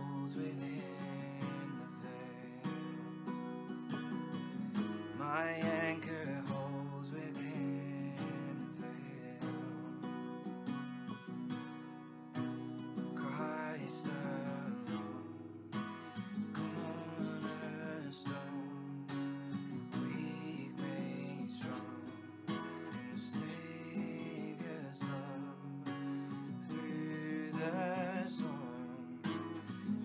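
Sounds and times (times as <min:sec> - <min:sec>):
acoustic guitar strumming chords: 0:00.0 - 0:30.0.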